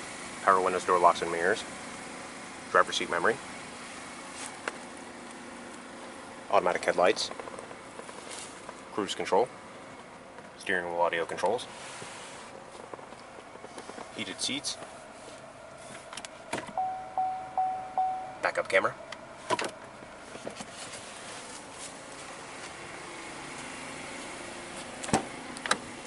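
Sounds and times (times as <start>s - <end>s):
car engine idling: 0.0s - 26.0s
parking sensor pulsing tone: 16.7s - 18.6s.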